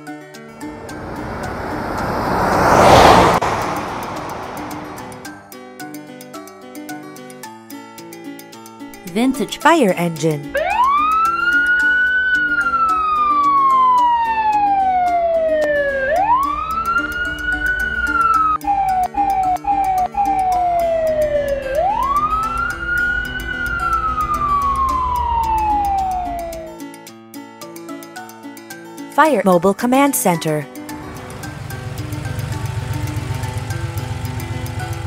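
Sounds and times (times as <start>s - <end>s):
fire engine siren wailing: 0.6s - 5.3s, 10.5s - 26.8s
light background music: 4.7s - 35.0s.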